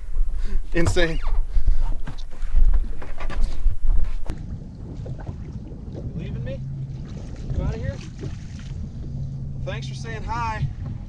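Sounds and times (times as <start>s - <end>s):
water lapping at boat side: 0.0s - 11.0s
wind buffeting microphone: 0.0s - 11.0s.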